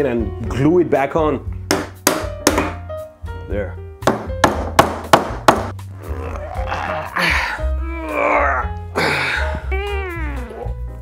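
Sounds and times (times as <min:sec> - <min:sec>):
background music: 0:00.0 - 0:11.0
sharp knocks: 0:01.7 - 0:02.8, 0:04.0 - 0:05.7
man grunting and groaning: 0:06.0 - 0:10.5.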